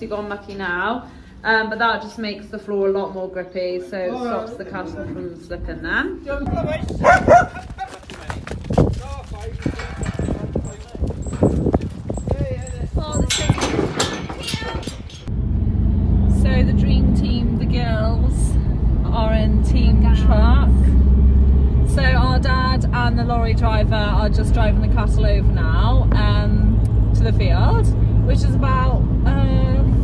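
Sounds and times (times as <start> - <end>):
voices: 0.0 - 15.3, 16.3 - 21.0, 21.8 - 30.0
car cabin road rumble: 6.5 - 30.0
cattle knocking and clatter: 6.8 - 15.3.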